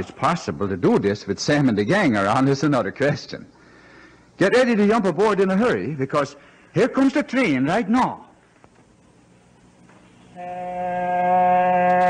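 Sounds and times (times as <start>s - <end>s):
low train horn blast: 10.4s - 12.0s.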